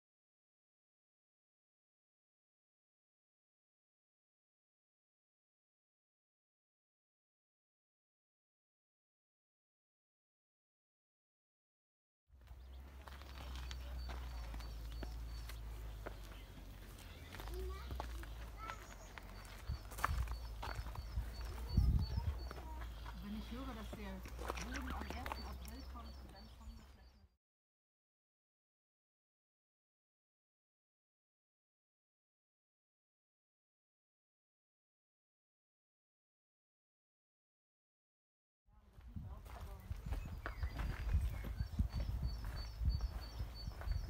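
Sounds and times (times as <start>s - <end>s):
bird calling: 12.4s - 27.3s, 40.1s - 44.0s
footsteps outdoors: 12.4s - 27.3s, 38.7s - 44.0s
wind rumbling on microphone: 19.4s - 23.1s, 38.9s - 44.0s.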